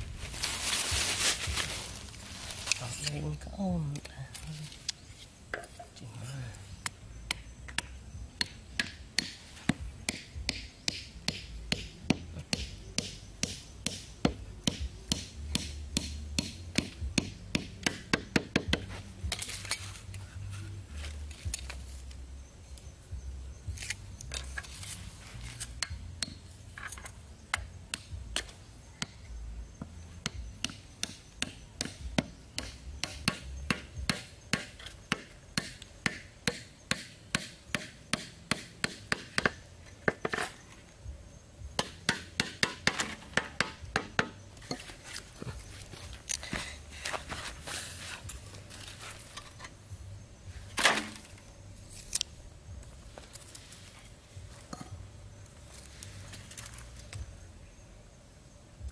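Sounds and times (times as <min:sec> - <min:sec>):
hatchet hammering wooden stakes: 0:06.8 - 0:19.8, 0:23.8 - 0:40.5, 0:41.7 - 0:49.4, 0:50.8 - 0:51.4.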